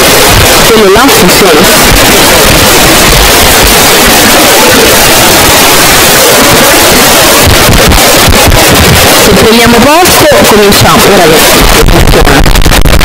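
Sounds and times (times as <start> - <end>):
distorted clipped noise: 0.0 - 13.0.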